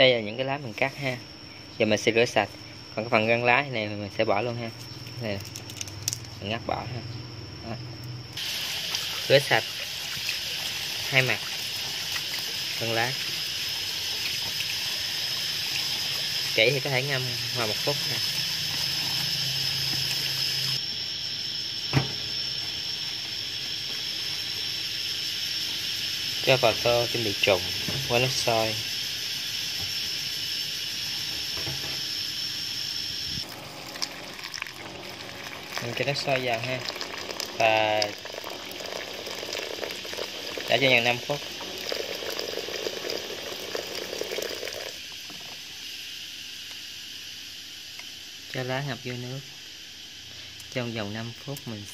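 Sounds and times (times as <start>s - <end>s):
tap water running onto leaves: 8.4s - 20.8s, 33.4s - 45.6s
steady hiss: 8.4s - 33.5s, 34.4s - 51.9s.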